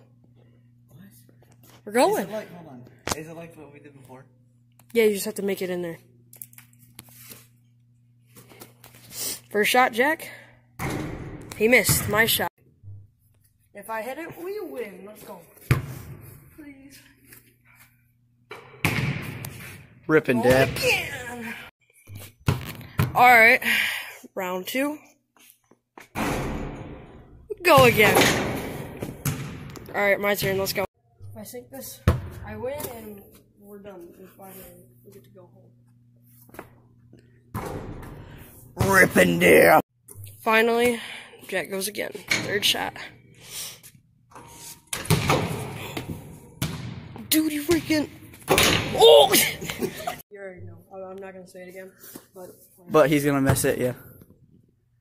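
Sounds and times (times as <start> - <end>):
basketball bouncing on wooden floor: 10.8 - 12.4, 27.7 - 30.8.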